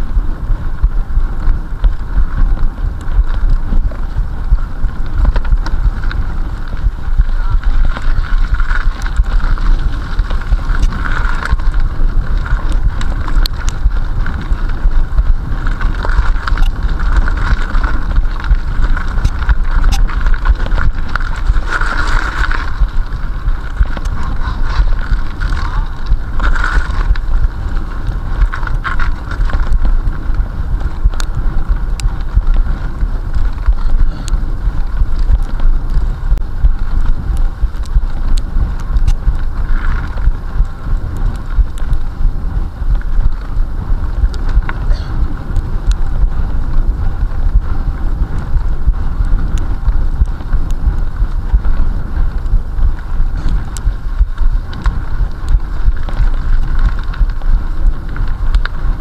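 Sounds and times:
bike clicks and rattles: 0.0 - 59.0
rumble of knobby tyres: 0.0 - 59.0
wind buffeting microphone: 0.0 - 59.0.

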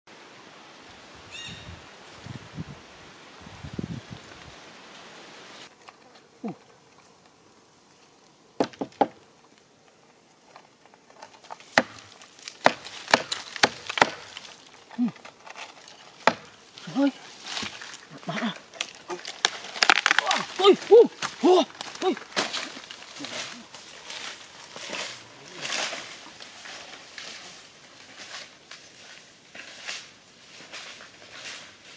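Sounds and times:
insect buzz: 0.2 - 13.1
bird call: 1.3 - 1.7
machete hacking tree stump: 11.7 - 14.5, 16.2 - 16.5.

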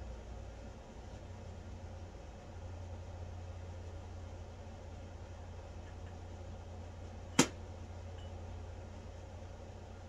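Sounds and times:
steady low hum: 0.0 - 10.0
sharp click: 7.4 - 7.6.

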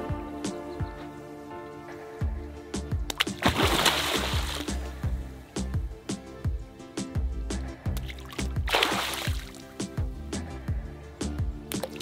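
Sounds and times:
background music with steady beat: 0.0 - 12.0
fish splash at water surface: 3.2 - 4.7, 8.7 - 9.6.

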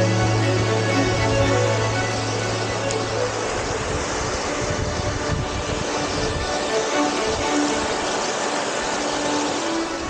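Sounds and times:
background music with held notes: 0.0 - 10.0
stream rushing over rocks: 0.0 - 10.0.

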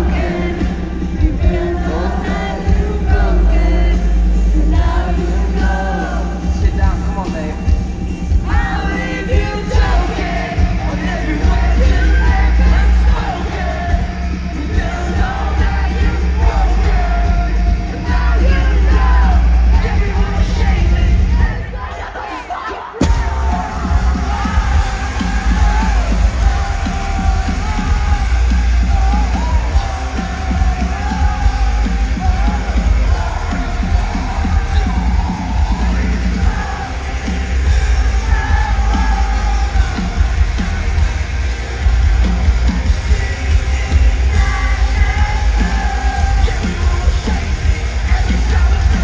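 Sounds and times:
heavy rock band playing: 0.0 - 49.0
singer yelling and singing: 0.0 - 49.0.

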